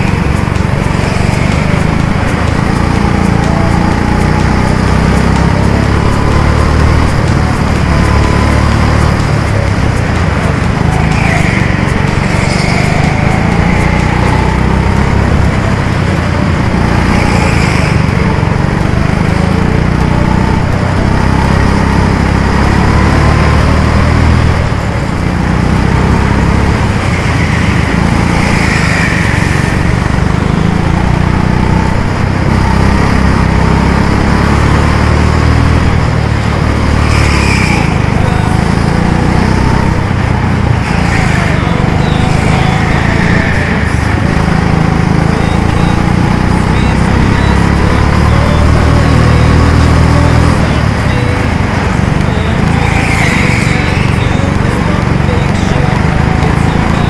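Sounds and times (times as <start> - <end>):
go-kart engine running: 0.0 - 57.0
high squeals: 0.0 - 57.0.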